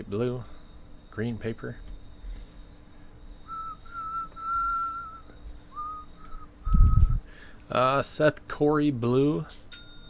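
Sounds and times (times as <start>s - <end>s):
person whistling: 3.2s - 7.3s.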